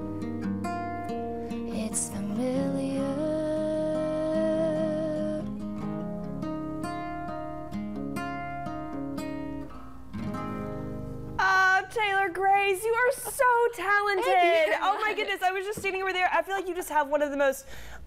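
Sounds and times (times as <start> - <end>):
acoustic guitar: 0.0 - 16.8.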